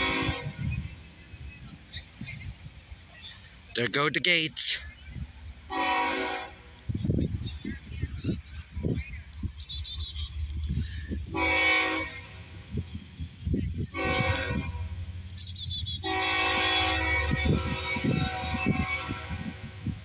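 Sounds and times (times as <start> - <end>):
locomotive air horn blasts: 0.0 - 0.8, 5.7 - 6.6, 11.3 - 12.5, 13.9 - 14.9, 16.0 - 19.8.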